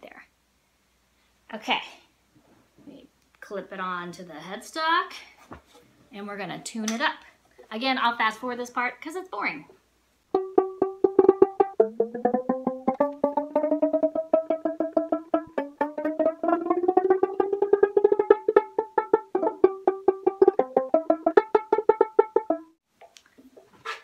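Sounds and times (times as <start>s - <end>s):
banjolele strings plucked: 10.3s - 22.8s.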